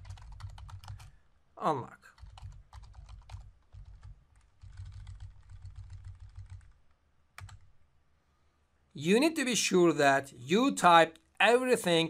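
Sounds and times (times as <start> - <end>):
computer keyboard typing: 0.0 - 1.1, 2.1 - 6.8, 7.4 - 7.7.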